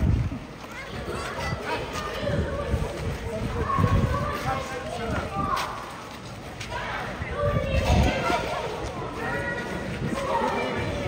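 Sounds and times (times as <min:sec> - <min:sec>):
voices chattering: 0:00.3 - 0:11.0.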